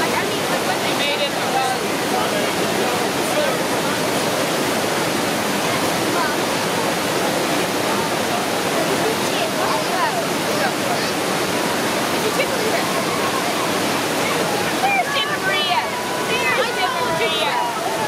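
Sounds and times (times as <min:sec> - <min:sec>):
water rushing over a weir: 0:00.0 - 0:18.0.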